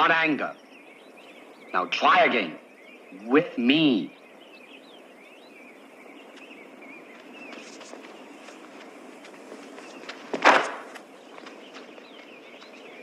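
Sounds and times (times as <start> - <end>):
faint bird chirping: 0.0 - 13.0.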